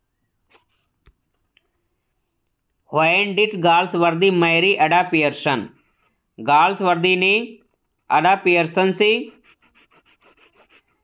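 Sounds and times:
stylus rubbing on tablet screen: 0:00.5 - 0:01.0, 0:05.7 - 0:06.3, 0:07.7 - 0:11.0.

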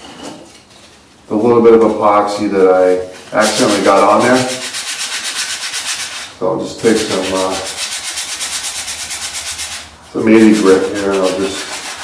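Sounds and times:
sandpaper rubbing on paper tube: 0:03.3 - 0:12.0.

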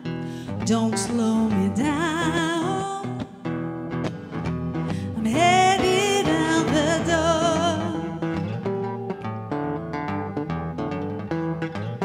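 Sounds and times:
strummed guitar chords: 0:00.0 - 0:12.0.

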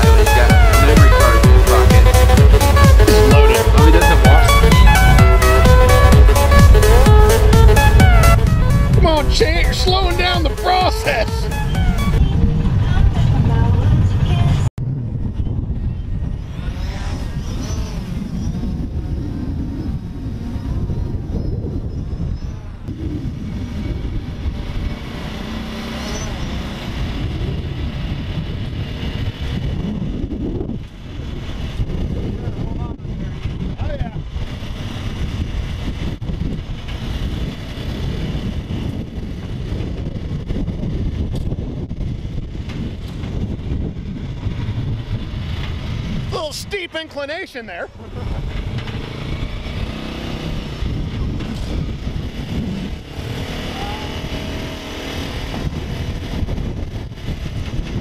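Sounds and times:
utility vehicle engine running: 0:00.0 - 0:46.5, 0:47.9 - 0:58.0.

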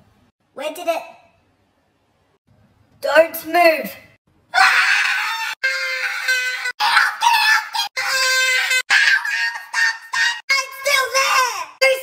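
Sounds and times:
man screaming: 0:04.5 - 0:11.4.

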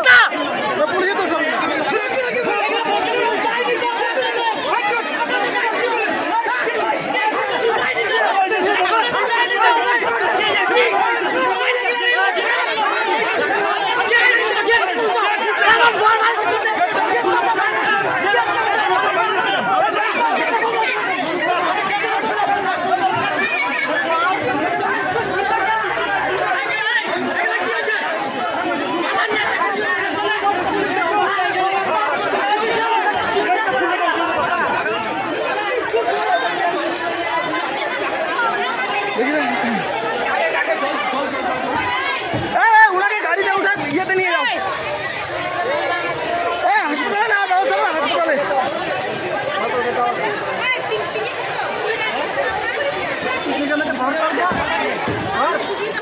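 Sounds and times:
crowd babble: 0:00.0 - 0:56.0.

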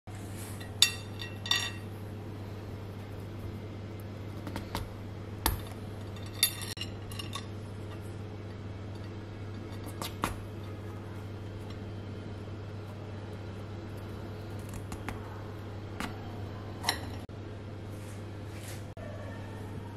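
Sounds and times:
steady low hum: 0:00.1 - 0:19.9.

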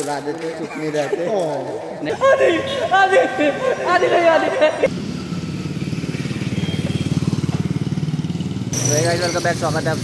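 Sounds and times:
motorcycle engine running: 0:04.9 - 0:10.0.

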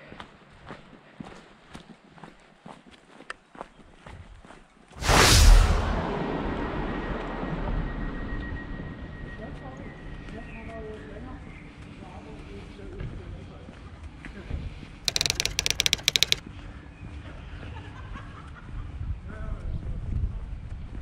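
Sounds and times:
loud rushing noise: 0:05.0 - 0:08.1.

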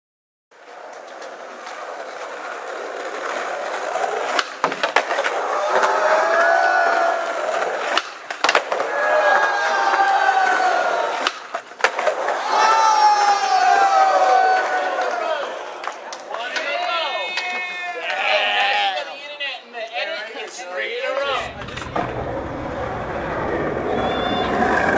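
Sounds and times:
skateboard wheels rolling on concrete: 0:00.5 - 0:24.9
skateboard tail pops and landings: 0:03.0 - 0:06.2, 0:07.5 - 0:10.1, 0:11.1 - 0:12.4
people shouting: 0:05.3 - 0:07.7, 0:08.8 - 0:11.3, 0:12.2 - 0:15.6.

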